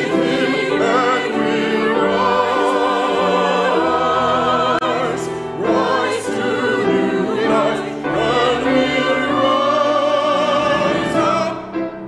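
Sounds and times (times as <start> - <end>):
choir singing sacred music: 0.0 - 12.0.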